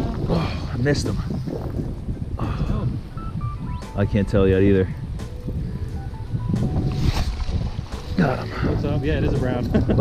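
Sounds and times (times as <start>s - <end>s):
wind rumbling on microphone: 0.0s - 10.0s
faint music: 2.4s - 10.0s.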